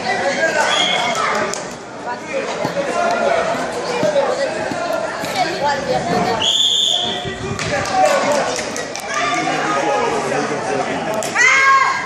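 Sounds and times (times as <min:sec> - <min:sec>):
spectators' voices: 0:00.0 - 0:12.0
referee's whistle: 0:00.7 - 0:01.1, 0:06.4 - 0:07.2.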